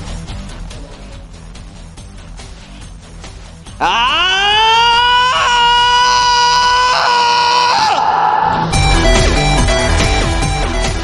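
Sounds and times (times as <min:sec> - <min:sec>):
high held vocal cry: 0:03.8 - 0:08.6
music with a heavy beat: 0:08.7 - 0:11.0.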